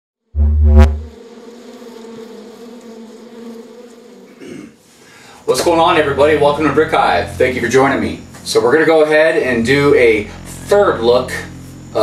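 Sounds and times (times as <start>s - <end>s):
wasp buzz: 0.3s - 12.0s
loud low thump: 0.4s - 1.1s.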